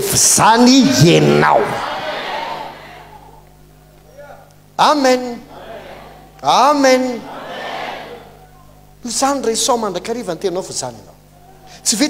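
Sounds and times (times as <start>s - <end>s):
voice echo through sound system: 0.0s - 1.9s
low steady hum: 0.0s - 12.0s.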